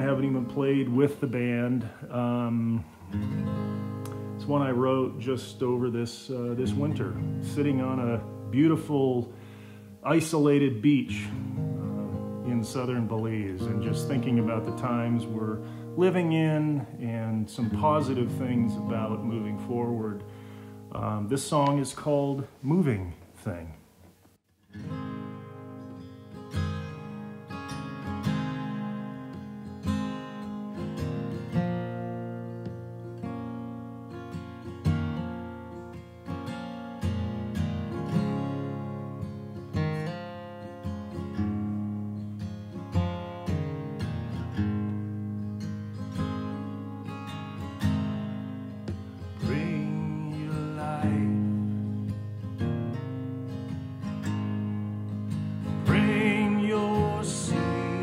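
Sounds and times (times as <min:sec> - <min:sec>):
acoustic guitar playing: 0:00.0 - 0:58.0
person singing: 0:49.4 - 0:51.8, 0:55.8 - 0:58.0.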